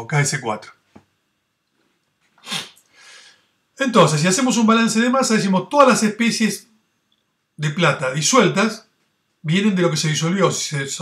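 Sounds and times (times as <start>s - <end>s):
sharp breath burst: 2.4s - 3.5s.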